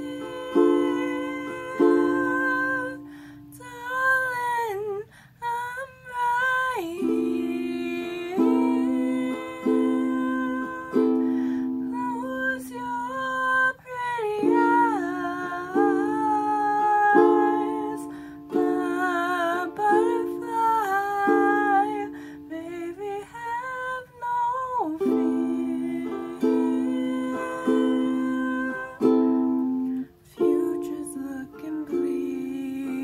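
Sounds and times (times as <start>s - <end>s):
plucked string chords: 0.0s - 4.1s, 6.9s - 22.8s, 25.0s - 33.0s
woman singing slow melody: 0.0s - 33.0s
instrumental accompaniment: 25.0s - 33.0s.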